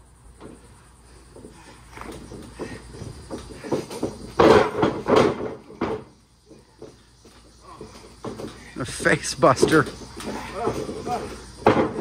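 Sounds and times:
loud slams on mat: 0:04.4 - 0:06.0.

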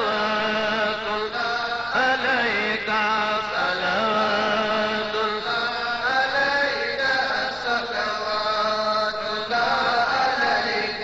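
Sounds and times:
voices chanting: 0:09.5 - 0:11.0.

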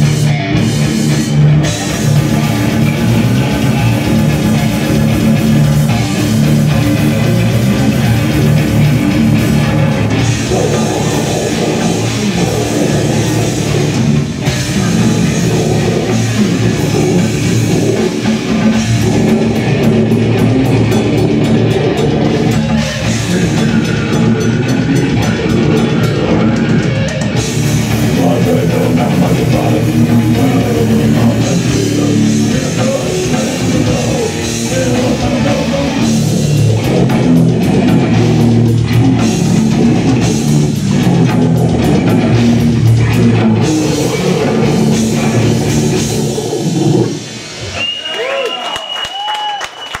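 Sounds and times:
heavy metal band chord: 0:00.0 - 0:47.6
bass guitar: 0:00.0 - 0:48.0
distorted guitars: 0:00.0 - 0:50.0
drums: 0:00.0 - 0:50.0
audience shouting: 0:43.4 - 0:50.0
people clapping: 0:47.7 - 0:50.0.

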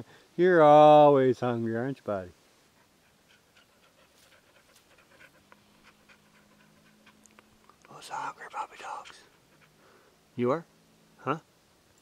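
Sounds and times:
dog panting: 0:02.7 - 0:10.1.

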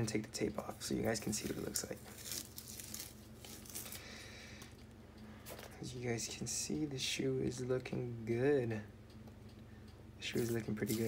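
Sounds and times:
masking tape peeling: 0:01.3 - 0:04.1.

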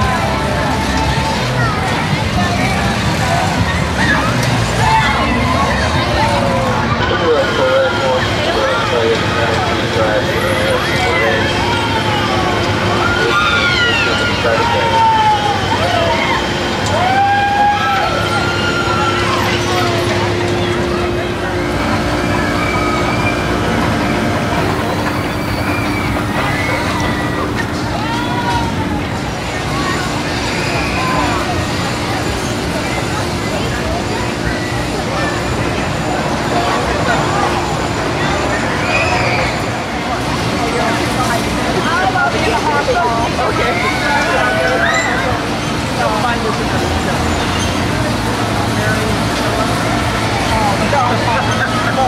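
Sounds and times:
crowd chatter and calls: 0:00.0 - 0:52.0
ride machinery rumble: 0:00.0 - 0:52.0.

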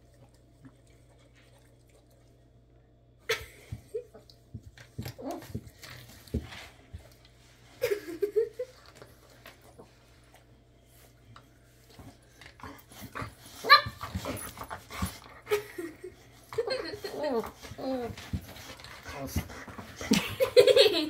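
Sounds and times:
dogs whining and grumbling: 0:12.4 - 0:20.4
dog yelping cry: 0:13.6 - 0:14.0.

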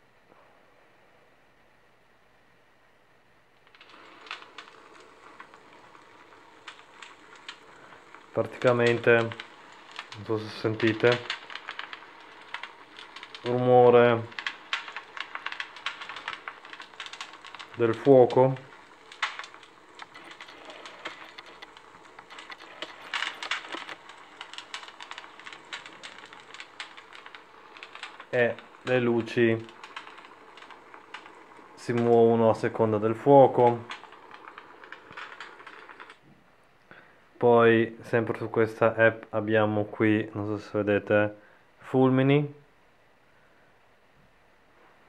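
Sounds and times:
wood fire crackling from phone speaker: 0:03.5 - 0:42.7.

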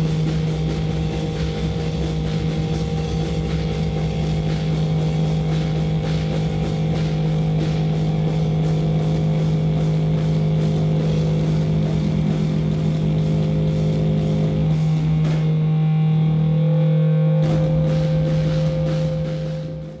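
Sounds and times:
drum and cymbal crashes: 0:00.0 - 0:15.7, 0:17.4 - 0:20.0.

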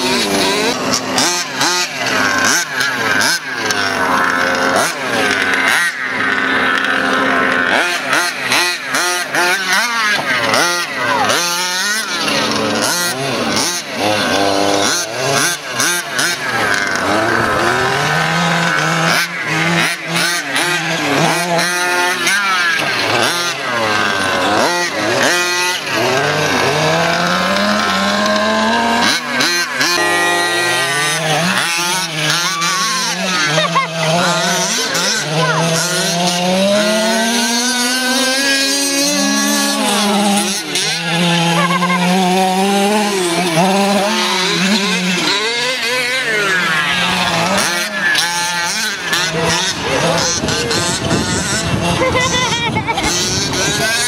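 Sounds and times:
small two-stroke engines revving: 0:00.0 - 0:54.0.

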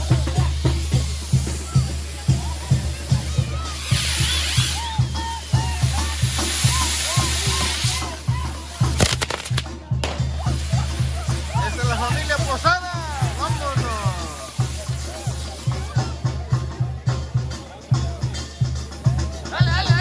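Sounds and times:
fireworks hissing: 0:00.0 - 0:19.7
banda music with bass beat: 0:00.0 - 0:20.0
sharp firework cracks: 0:03.7 - 0:15.6.

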